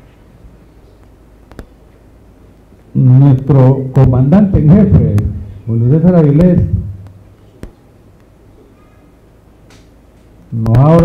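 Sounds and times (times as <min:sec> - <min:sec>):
low microphone hum: 0:00.0 - 0:11.0
faint high-pitched call: 0:08.6 - 0:09.2.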